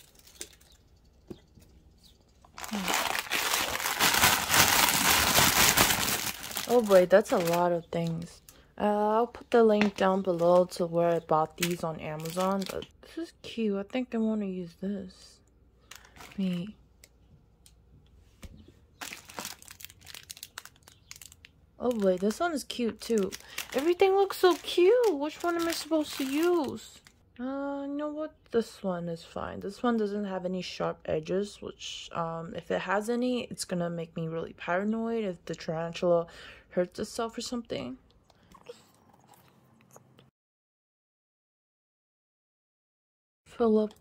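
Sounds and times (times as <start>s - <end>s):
plastic packaging crinkling: 0.0s - 0.8s, 2.4s - 8.6s, 11.5s - 12.9s, 15.9s - 16.7s, 19.0s - 27.2s.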